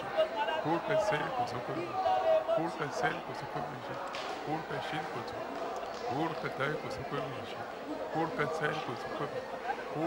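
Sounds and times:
people praying aloud: 0.0s - 10.0s.

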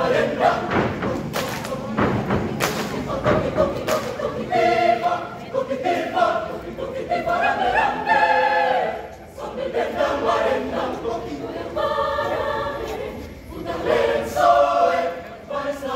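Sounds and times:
choir singing a cappella: 0.0s - 15.9s.

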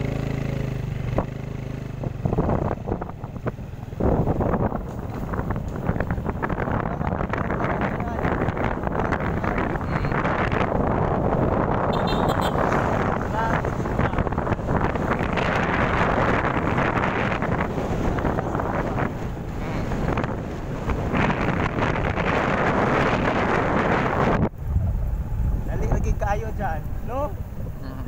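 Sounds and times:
motorcycle engine running: 0.0s - 28.0s
road noise: 0.0s - 28.0s
wind buffeting microphone: 0.0s - 28.0s.

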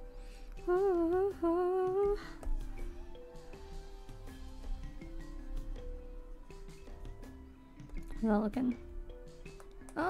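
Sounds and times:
soft background music: 0.0s - 10.0s
woman humming: 0.6s - 3.2s.

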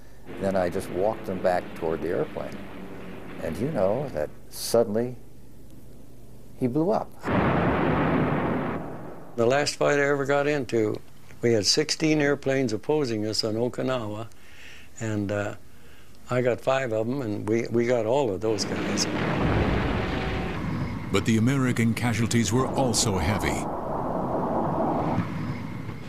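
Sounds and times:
aircraft explosion: 0.3s - 4.7s, 7.2s - 9.4s, 18.5s - 26.0s
deep rumble: 0.3s - 6.3s, 18.5s - 26.0s.

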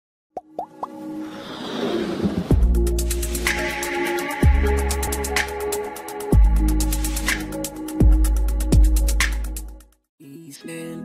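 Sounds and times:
quick pops rising in pitch: 0.4s - 1.0s
whoosh: 1.2s - 3.7s.

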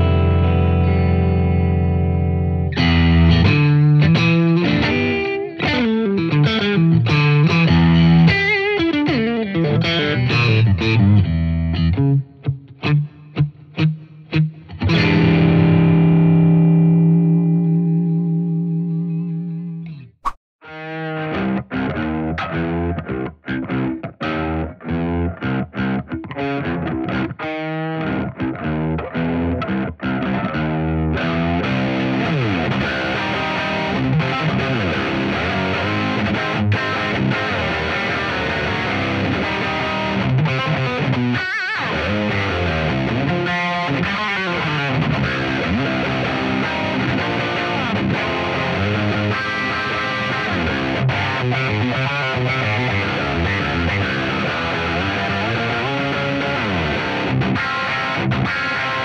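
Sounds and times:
distorted electric guitar: 0.0s - 59.0s.

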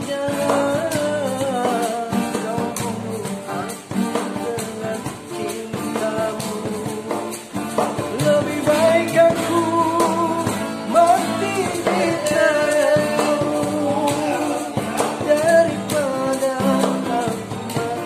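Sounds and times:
backing music with steady beat: 0.0s - 18.0s
man singing: 0.0s - 18.0s.

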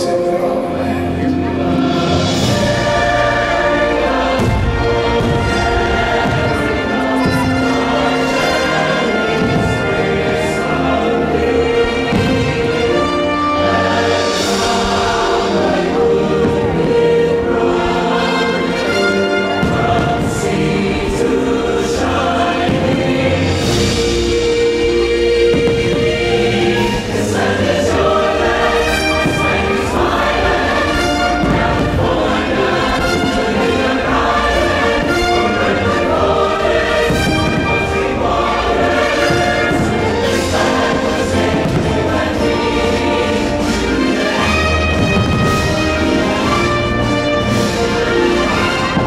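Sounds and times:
choir singing held notes: 0.0s - 49.0s
instrumental accompaniment: 0.0s - 49.0s.

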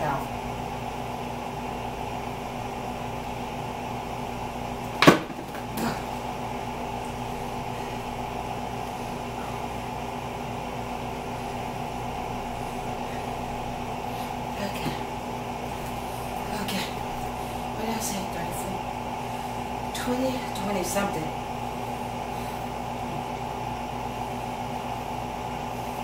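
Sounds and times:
machine-like hum: 0.0s - 26.0s.

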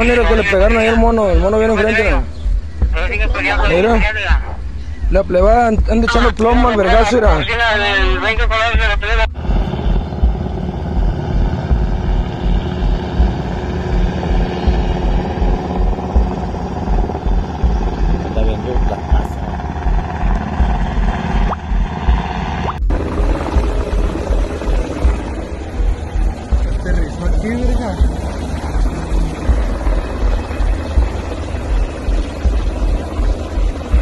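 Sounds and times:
helicopter rotor thudding: 0.0s - 34.0s.

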